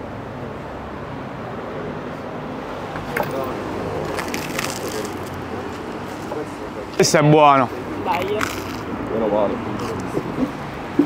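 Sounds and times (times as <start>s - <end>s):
street traffic: 0.0s - 11.0s
people talking quietly: 2.9s - 11.0s.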